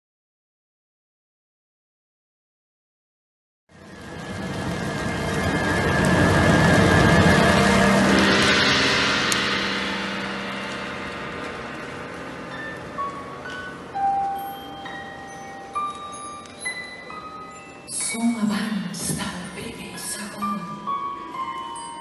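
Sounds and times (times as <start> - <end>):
orchestral rushing swell: 3.8 - 15.7
high bell-like notes: 5.4 - 22.0.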